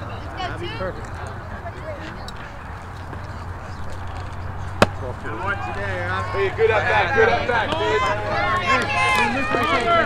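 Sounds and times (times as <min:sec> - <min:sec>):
voices of players and spectators: 0:00.0 - 0:10.0
baseball bat crack: 0:04.0 - 0:05.2.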